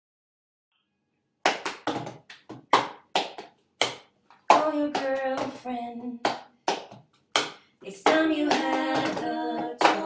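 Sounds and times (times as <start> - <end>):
hand claps and slaps rhythm: 1.4 - 10.0.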